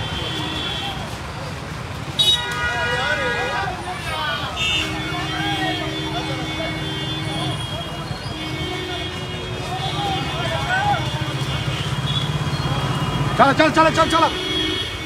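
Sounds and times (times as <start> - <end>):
crowd voices: 0.0 - 15.0
vehicle engines running: 0.0 - 15.0.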